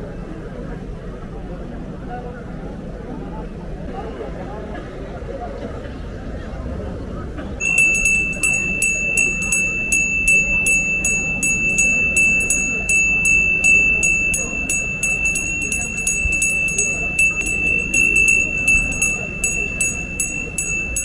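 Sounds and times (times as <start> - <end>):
hand bell ringing: 7.6 - 21.0.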